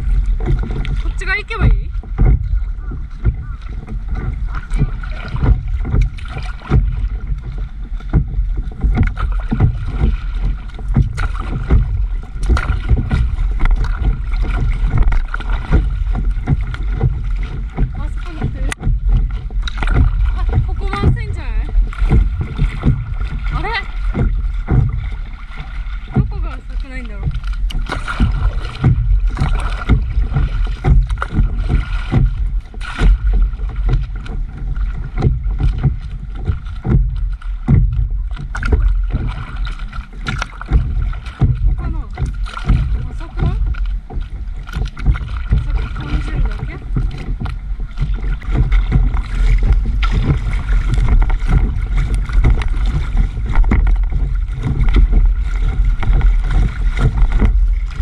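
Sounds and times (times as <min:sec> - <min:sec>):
heavy low rumble: 0:00.0 - 0:58.0
water splashing against paddleboard: 0:00.0 - 0:58.0.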